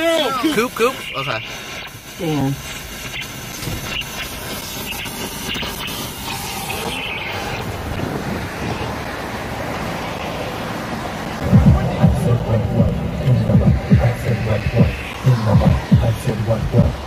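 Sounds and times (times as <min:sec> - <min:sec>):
traffic noise: 0:00.0 - 0:17.0
cars passing: 0:05.3 - 0:17.0.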